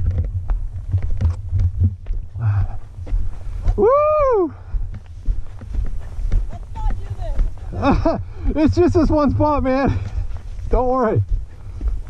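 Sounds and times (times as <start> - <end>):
dirt bike engine rumble: 0.0 - 12.0
wind buffeting: 0.0 - 12.0
rider shouting woo: 3.8 - 4.6.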